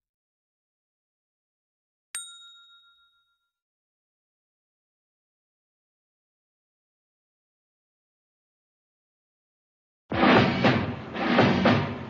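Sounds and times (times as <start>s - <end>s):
notification bell ding: 2.2s - 3.6s.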